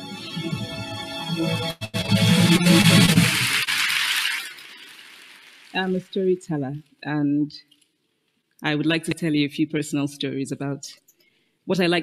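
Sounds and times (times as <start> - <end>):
music sting: 1.4 - 4.8.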